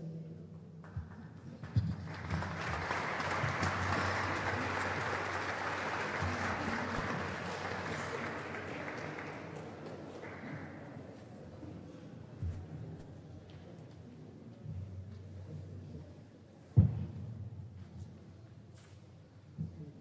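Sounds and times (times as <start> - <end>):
audience applauding: 1.6 - 10.9.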